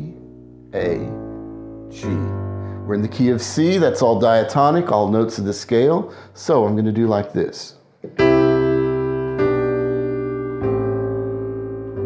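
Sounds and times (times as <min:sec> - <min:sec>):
piano chords: 0:00.0 - 0:07.5, 0:08.1 - 0:12.0.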